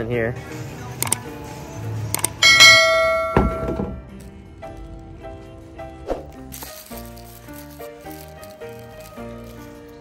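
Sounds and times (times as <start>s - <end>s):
soft background music: 0.0s - 10.0s
sharp mouse clicks: 1.0s - 1.2s, 2.2s - 2.4s
bright bell chime: 2.4s - 3.8s.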